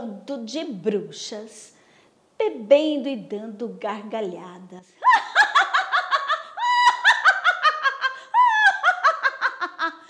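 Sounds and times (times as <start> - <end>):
woman cackling: 5.0 - 10.0.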